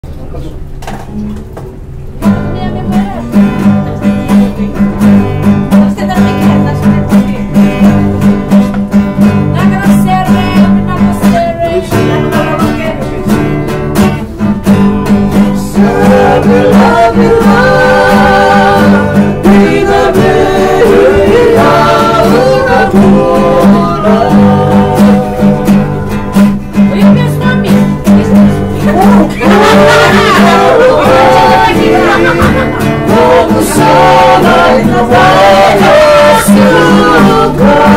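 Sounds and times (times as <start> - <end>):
acoustic guitars strummed: 0.0 - 37.9
men singing together: 15.4 - 26.0, 28.8 - 37.9.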